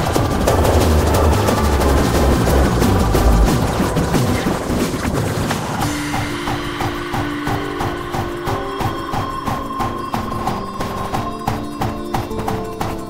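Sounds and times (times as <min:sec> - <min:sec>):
held synth notes: 0:00.0 - 0:05.2, 0:05.8 - 0:13.0
fast kick-drum beat: 0:00.0 - 0:13.0.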